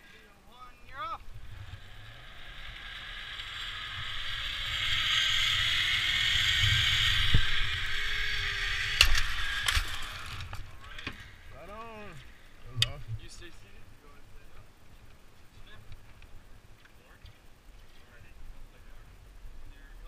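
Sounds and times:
zipline pulleys whirring on cable: 1.2 - 12.6.

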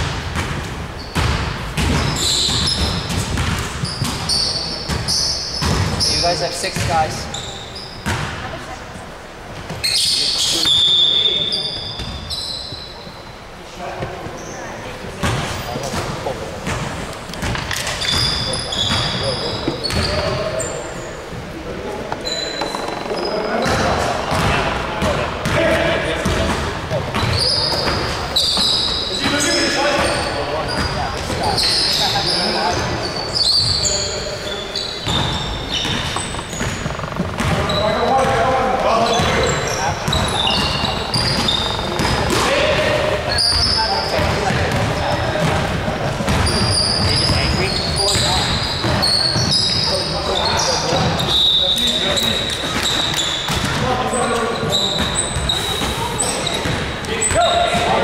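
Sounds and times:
sneakers squeaking: 0.0 - 58.0
basketball bouncing on wooden floor: 4.9 - 6.0, 15.2 - 20.4, 22.1 - 25.6, 35.0 - 38.4, 40.1 - 42.4, 43.5 - 49.5.

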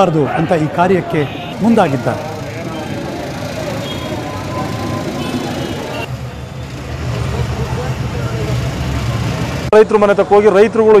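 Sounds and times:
vehicle engine rumbling: 1.0 - 9.8.

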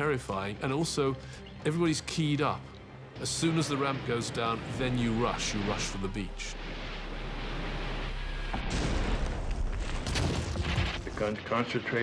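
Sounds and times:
rumbling gunfire and explosions: 3.2 - 12.0.

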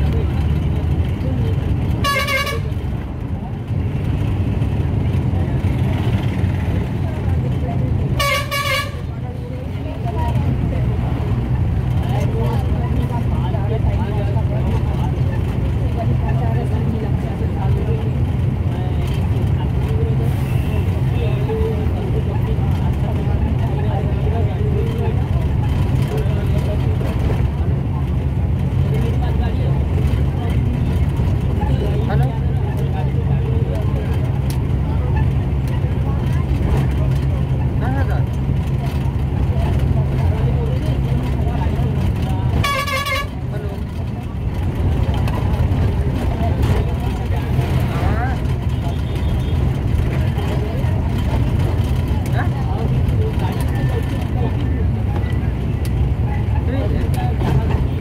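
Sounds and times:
vehicle engine and tyres rumbling: 0.0 - 58.0
vehicle horn toot: 2.0 - 2.8, 8.2 - 9.0, 42.6 - 43.3.

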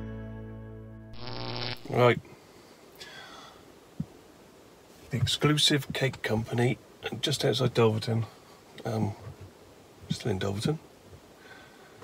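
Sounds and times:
man humming buzzily: 1.2 - 1.9.

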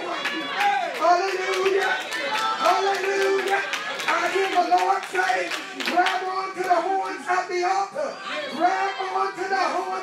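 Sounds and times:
congregation clapping: 0.0 - 7.7.

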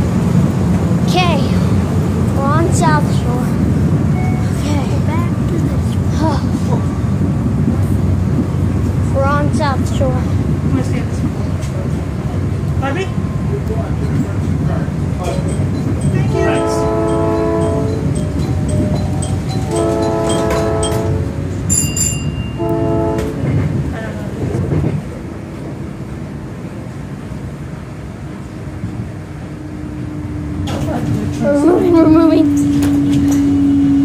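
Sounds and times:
rumble of moving train: 0.0 - 34.0
train horn blasts: 16.2 - 18.1, 19.7 - 21.4, 22.5 - 23.6.

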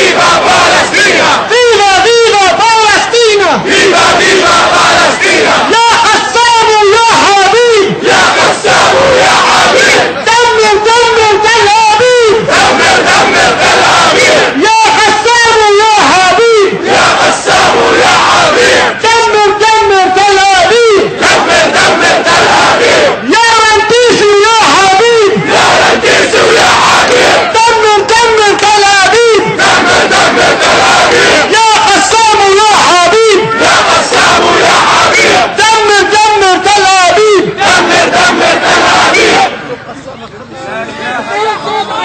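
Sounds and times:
crowd shouting back: 0.0 - 39.8.

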